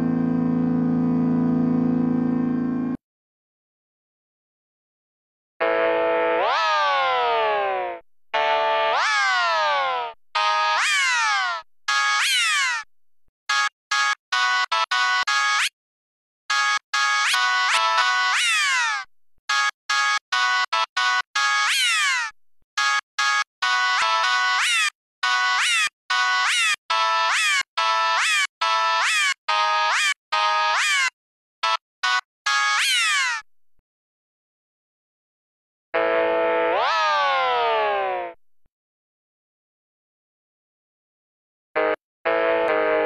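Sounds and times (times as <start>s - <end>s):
synthesized organ notes: 0.0s - 3.0s, 41.8s - 43.0s.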